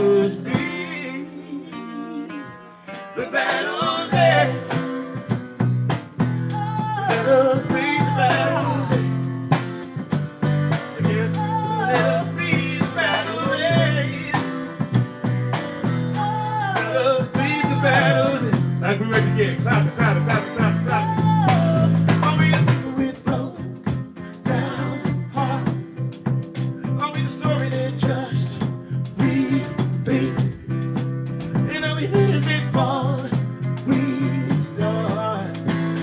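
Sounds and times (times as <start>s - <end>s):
person singing: 0.0s - 4.8s, 6.5s - 9.2s, 11.0s - 14.5s, 16.2s - 25.9s, 31.6s - 35.7s
electric bass: 0.0s - 36.0s
strummed acoustic guitar: 1.9s - 36.0s.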